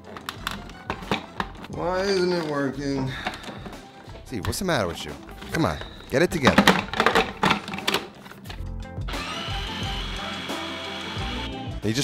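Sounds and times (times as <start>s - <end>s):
plastic clicks and knocks: 6.4s - 8.6s
food processor motor whining: 9.1s - 11.6s.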